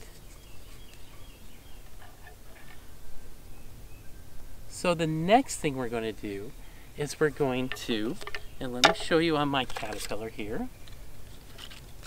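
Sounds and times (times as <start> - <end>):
birds chirping: 0.0 - 11.5
low outdoor rumble: 0.0 - 12.0.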